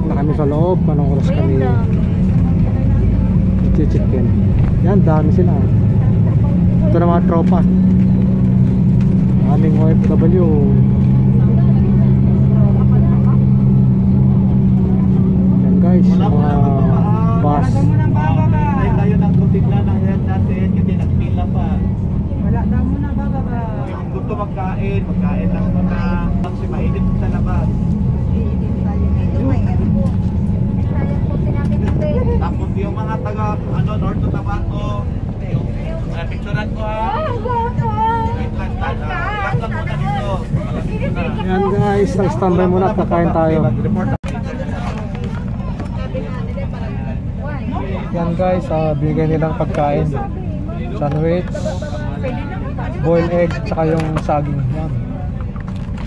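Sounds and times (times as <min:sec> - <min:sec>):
faint voices: 0:00.0 - 0:56.0
motor vehicle engine hum: 0:00.0 - 0:56.0.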